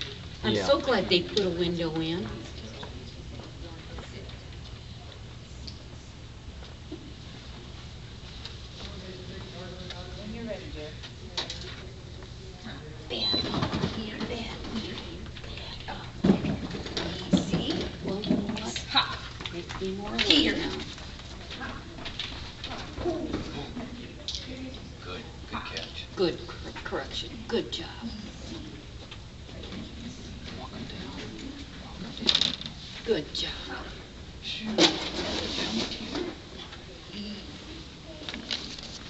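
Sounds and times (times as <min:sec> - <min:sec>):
low room hum: 0:00.0 - 0:39.0
woman praising a dog: 0:17.2 - 0:20.9.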